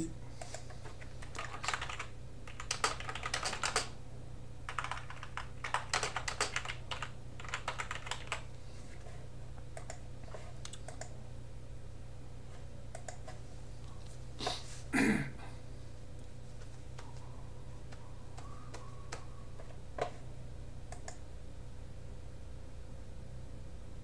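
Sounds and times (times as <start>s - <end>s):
low hum: 0.0s - 0.7s
computer keyboard key clicks: 20.9s - 21.2s.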